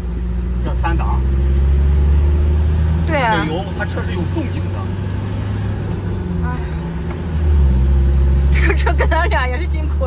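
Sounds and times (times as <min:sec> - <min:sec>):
motorhome engine droning under load: 0:00.0 - 0:10.0.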